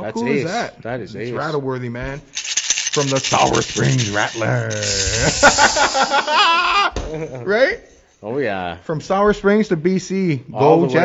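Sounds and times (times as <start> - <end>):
man calling out: 0.0 - 0.7
handheld rattle shaking: 2.2 - 6.2.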